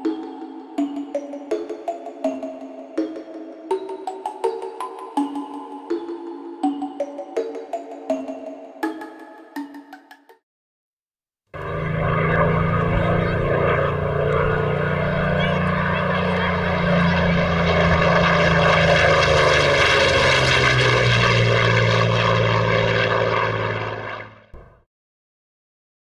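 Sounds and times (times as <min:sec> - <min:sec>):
propeller aircraft engine running: 0:11.6 - 0:24.8.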